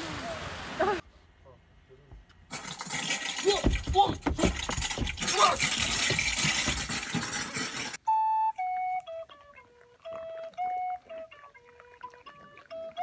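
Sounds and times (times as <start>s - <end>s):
solo woodwind melody: 8.0s - 13.0s.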